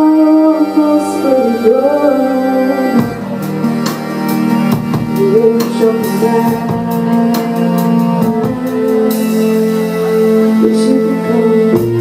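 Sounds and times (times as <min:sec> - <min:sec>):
woman singing: 0:00.0 - 0:03.6, 0:05.2 - 0:12.0
keyboard chords: 0:00.0 - 0:12.0
drum kit and cymbals: 0:02.9 - 0:12.0.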